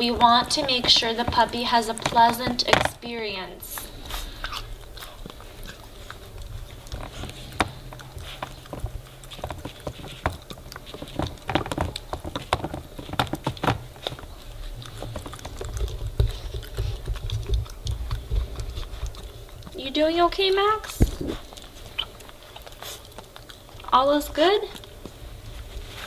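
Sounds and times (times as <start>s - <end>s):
puppy gnawing rubber toy: 0.0s - 26.0s.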